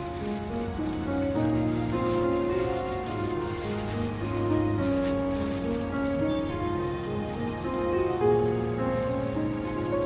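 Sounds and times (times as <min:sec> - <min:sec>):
soft background music: 0:00.0 - 0:10.0
thin plastic bag crinkling: 0:00.0 - 0:10.0.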